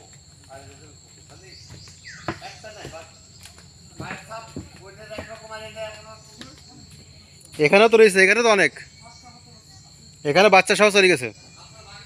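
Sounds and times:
insects droning: 0:00.0 - 0:12.0.

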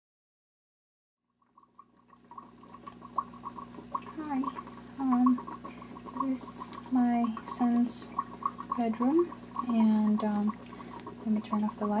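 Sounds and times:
water trickling: 0:01.2 - 0:12.0
aquarium filter hum: 0:01.3 - 0:12.0
water bubbling: 0:01.3 - 0:12.0
person's voice: 0:11.2 - 0:12.0.

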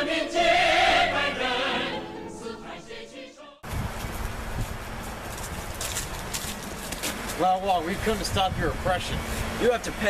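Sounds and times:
wind on microphone: 0:03.6 - 0:05.8
crackling rustles: 0:03.7 - 0:08.2.

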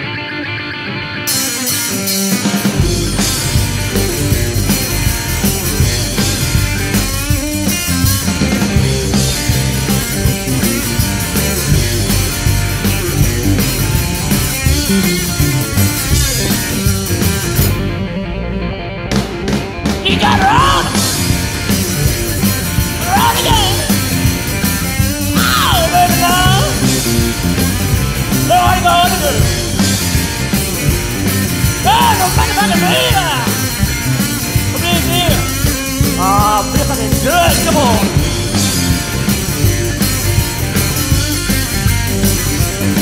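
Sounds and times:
electric guitar: 0:00.0 - 0:43.0
rock band playing blues: 0:00.0 - 0:43.0
bass and drum kit: 0:01.2 - 0:43.0.

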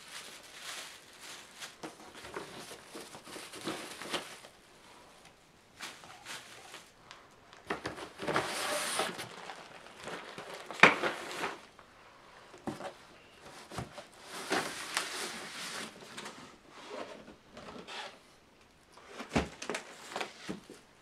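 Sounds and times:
cardboard and plastic packaging rustling: 0:00.0 - 0:11.9, 0:12.5 - 0:18.3, 0:19.0 - 0:21.0.

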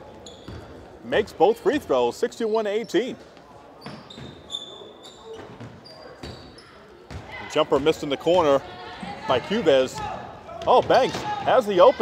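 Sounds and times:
sneakers squeaking: 0:00.0 - 0:12.0.

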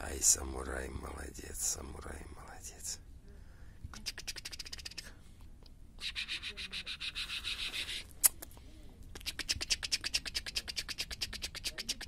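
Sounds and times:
fast scratching strokes: 0:04.0 - 0:05.1, 0:06.0 - 0:08.1, 0:09.2 - 0:12.0.

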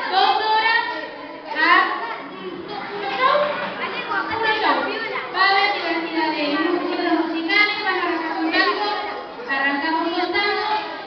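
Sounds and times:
children's voices: 0:00.0 - 0:11.0.

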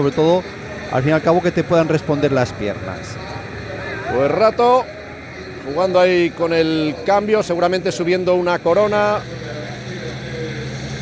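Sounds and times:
commentator speaking: 0:00.0 - 0:09.5
engine hum: 0:00.0 - 0:11.0
outdoor race noise: 0:00.0 - 0:11.0.

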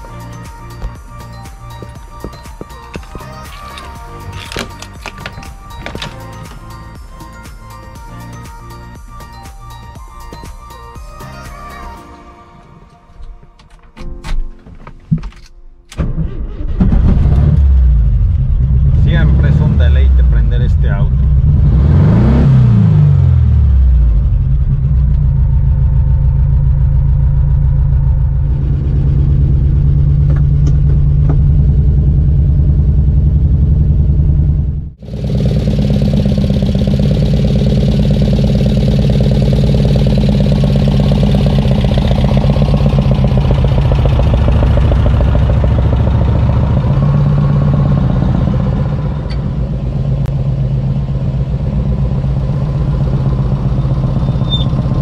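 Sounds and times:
car engine idling: 0:00.0 - 0:11.8, 0:23.1 - 0:55.0.

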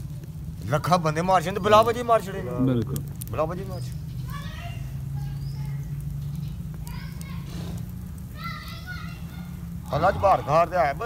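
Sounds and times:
man speaking: 0:00.7 - 0:03.9.

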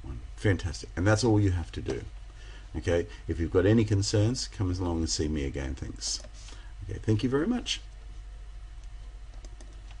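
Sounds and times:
computer clicks: 0:08.8 - 0:10.0.

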